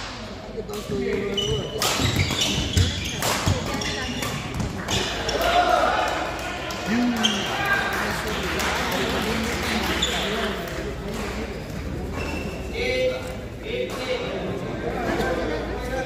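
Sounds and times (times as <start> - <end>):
voices of players and spectators: 0.0 - 16.0
racket hitting shuttlecock: 0.7 - 6.2.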